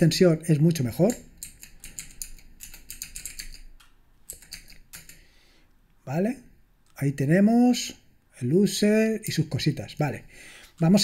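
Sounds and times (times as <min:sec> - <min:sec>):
typing on computer keyboard: 0:01.0 - 0:05.2.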